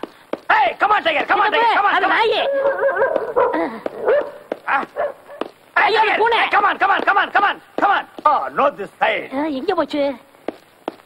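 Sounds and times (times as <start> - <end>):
dog barking: 2.4 - 5.5.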